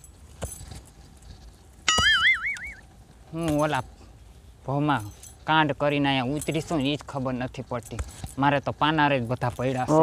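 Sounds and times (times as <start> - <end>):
wobbling boing sound effect: 1.9 - 2.7.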